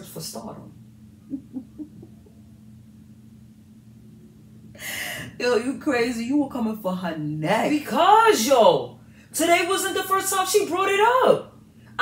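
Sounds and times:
low steady hum: 0.0s - 12.0s
stifled laughs: 1.2s - 2.4s.

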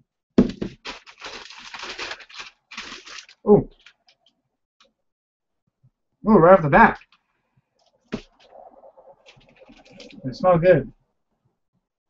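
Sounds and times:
paper crackling: 0.4s - 4.4s, 9.2s - 10.2s
paper rustling: 0.4s - 4.4s, 9.2s - 10.2s.

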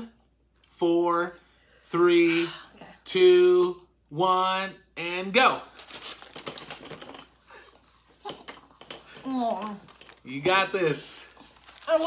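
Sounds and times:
food packaging rustling: 5.6s - 7.4s, 8.5s - 12.0s.

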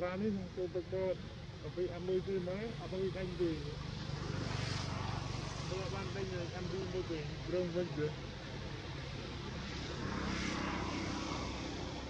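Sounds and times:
engine drone passing: 0.0s - 12.0s.

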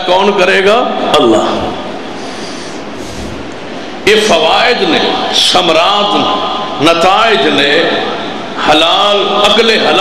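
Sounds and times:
background hiss and room noise: 0.0s - 10.0s.

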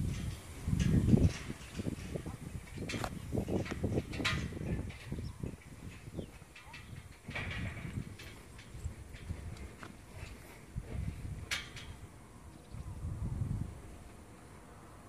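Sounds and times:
gusty wind on microphone: 0.0s - 15.0s.

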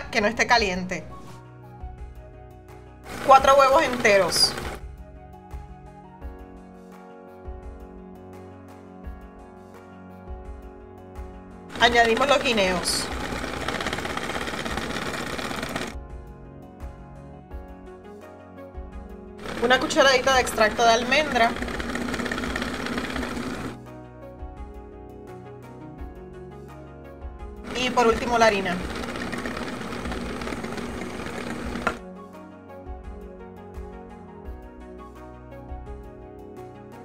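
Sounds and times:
electric hand mixer whirring: 3.1s - 4.8s, 11.7s - 16.0s, 19.4s - 23.8s, 27.7s - 32.0s.

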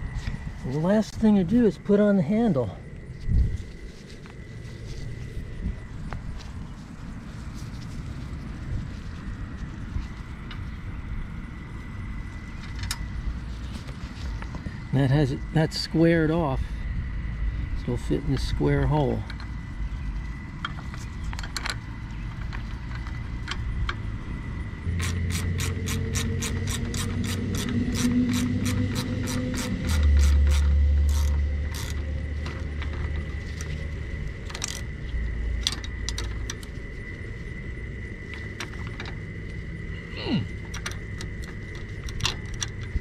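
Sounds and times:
low rumble: 0.0s - 43.0s
trailer jack gears clicking: 24.9s - 33.7s, 34.3s - 35.0s, 35.6s - 36.8s, 40.6s - 43.0s.

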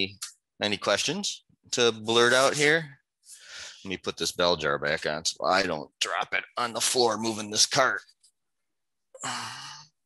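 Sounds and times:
man sighing: 9.2s - 10.0s.

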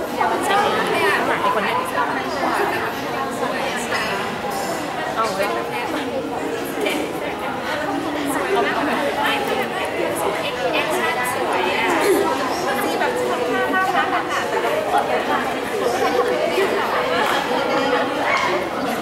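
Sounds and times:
hubbub of overlapping voices: 0.0s - 19.0s.

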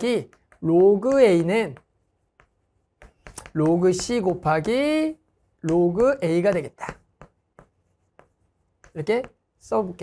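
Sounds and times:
chalk writing on chalkboard: 0.0s - 10.0s.

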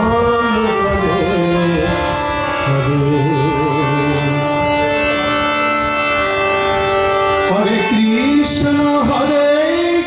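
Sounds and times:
harmonium chord: 0.0s - 10.0s.

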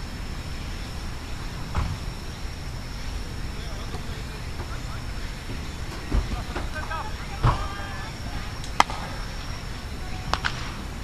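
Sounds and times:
voices: 0.0s - 11.0s
baseball smacking into glove: 8.8s - 9.1s.

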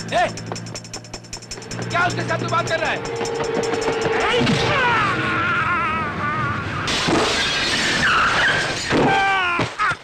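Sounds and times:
wavering squealing tones: 1.4s - 8.9s
fight sound effects crash: 4.2s - 5.2s
falling-pitch squeal: 6.7s - 8.9s.

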